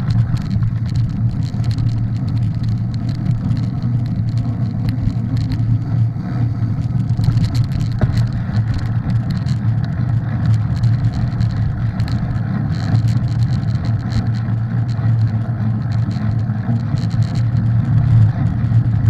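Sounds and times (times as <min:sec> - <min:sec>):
light bike rattles: 0:00.0 - 0:19.0
tyre and wind rumble: 0:00.0 - 0:19.0.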